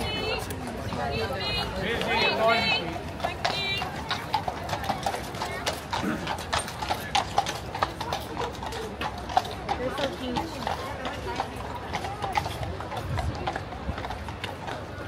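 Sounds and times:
horse hooves on hard paving: 0:00.0 - 0:15.0.

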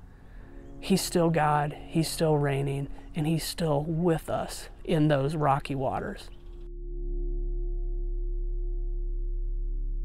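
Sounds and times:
deep low hum: 0:06.3 - 0:10.0.

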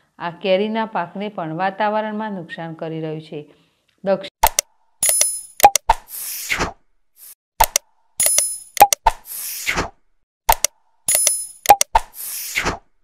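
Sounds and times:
sharp synthetic clicks: 0:04.4 - 0:06.4, 0:07.2 - 0:09.8, 0:10.5 - 0:12.8.

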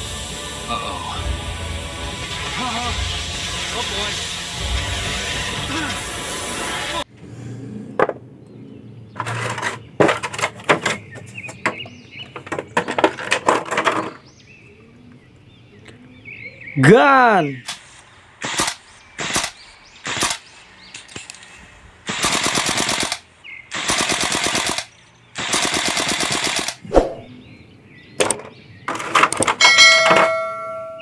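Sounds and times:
automatic rifle fire bursts: 0:18.4 - 0:20.5, 0:22.1 - 0:26.8
swoosh: 0:26.8 - 0:27.4
bell chime: 0:29.6 - 0:31.0.

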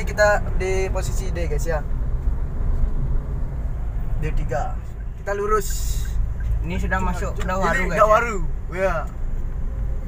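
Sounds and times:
car engine and road rumble: 0:00.0 - 0:10.0.

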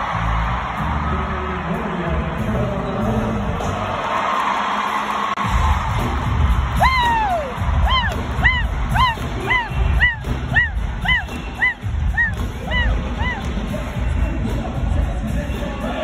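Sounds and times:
live concert music over pa: 0:00.0 - 0:16.0
heavy beat: 0:05.4 - 0:16.0.

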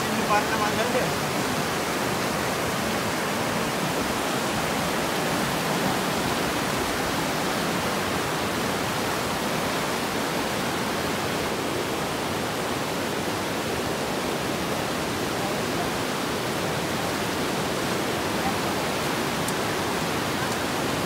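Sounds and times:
river rapids rushing: 0:00.0 - 0:21.0.

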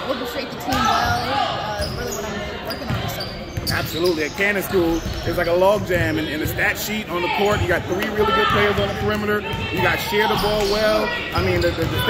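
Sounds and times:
basketballs dribbling on gym floor: 0:00.6 - 0:12.0.

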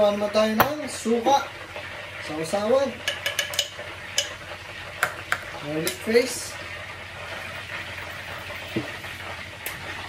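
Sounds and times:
meat deep-frying in hot oil: 0:00.0 - 0:10.0.

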